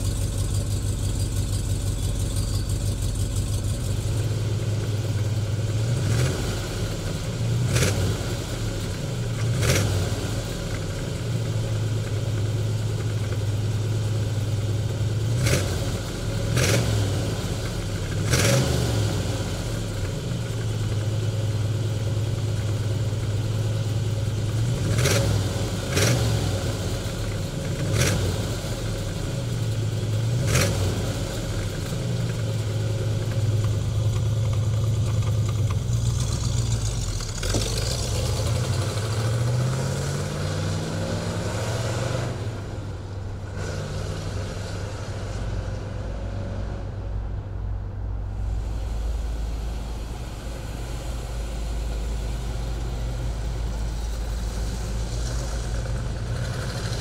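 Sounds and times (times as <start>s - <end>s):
car engine idling and revving: 0.0s - 57.0s.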